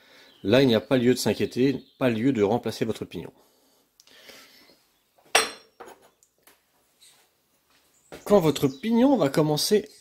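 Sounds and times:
metal parts set on workbench: 5.3 - 6.2
sharp metallic clink: 5.4 - 5.8.

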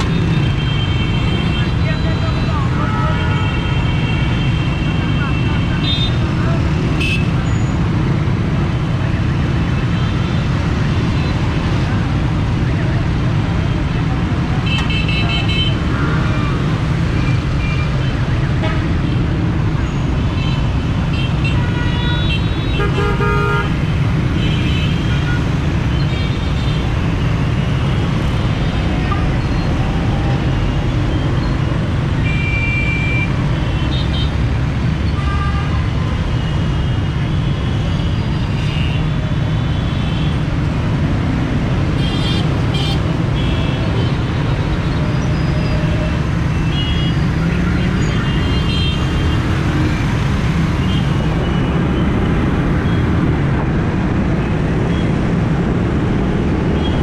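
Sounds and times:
road noise: 0.0 - 57.0.

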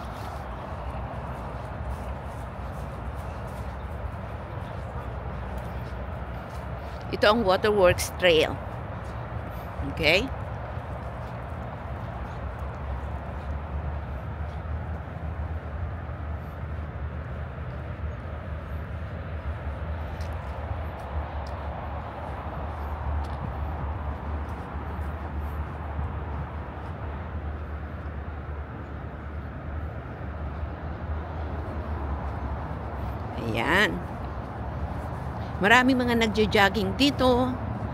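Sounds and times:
low rumble of distant traffic: 0.0 - 37.9.

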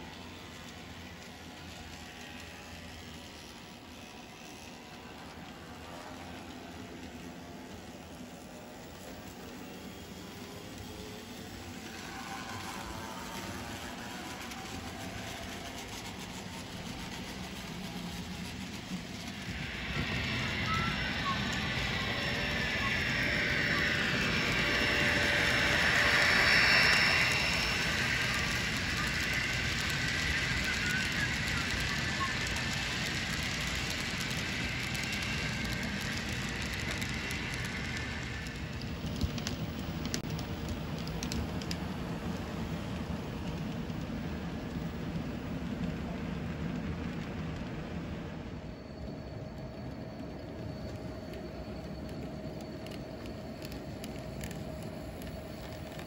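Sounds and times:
model train whirring and rattling: 0.0 - 56.0.

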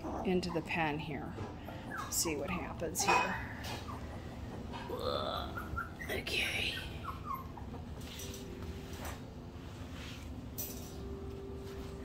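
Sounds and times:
puppies whimpering: 0.0 - 8.3
soft rustling: 7.9 - 10.6.

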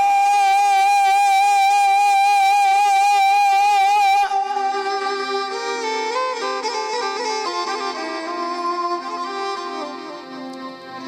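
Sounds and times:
man singing a long high note: 0.0 - 5.4.

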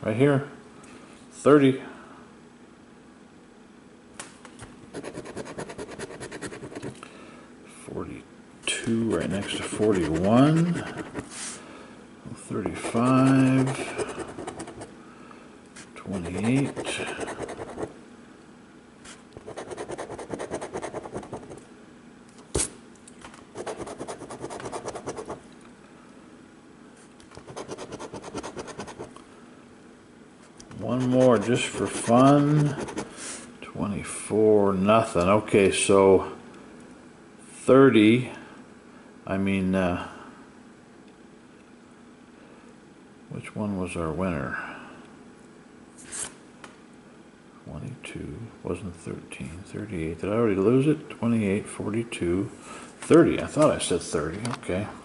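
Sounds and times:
lottery ticket coating being scratched: 5.0 - 6.9, 9.2 - 11.6, 12.7 - 14.9, 16.1 - 17.8, 27.4 - 29.1, 30.8 - 33.4.

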